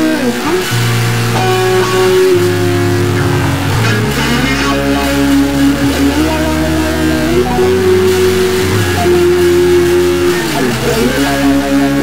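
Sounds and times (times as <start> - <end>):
bass line: 0.0 - 12.0
electric guitar notes: 0.0 - 12.0.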